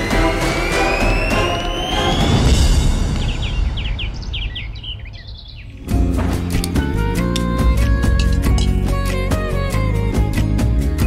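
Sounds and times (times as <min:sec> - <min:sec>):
background music: 0:00.0 - 0:04.7, 0:05.5 - 0:11.0
birds chirping: 0:01.2 - 0:09.8.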